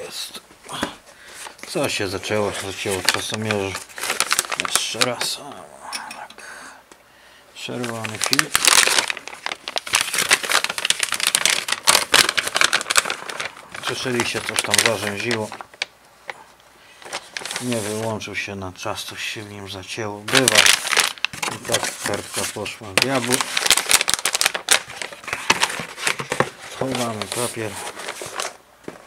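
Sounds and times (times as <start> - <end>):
paper packaging crinkling: 0.7 - 5.6, 7.6 - 18.3, 20.2 - 29.0.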